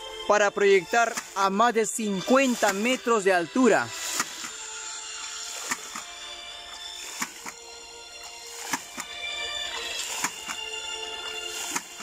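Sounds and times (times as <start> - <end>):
background music with held tones: 0.0 - 12.0
water spurting: 1.0 - 12.0
pump valves clacking shut: 11.7 - 12.0.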